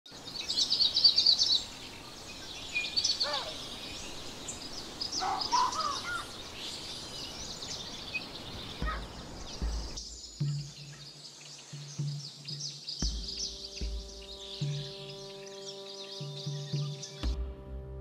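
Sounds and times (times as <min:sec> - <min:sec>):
songbirds chirping: 0:00.1 - 0:18.0.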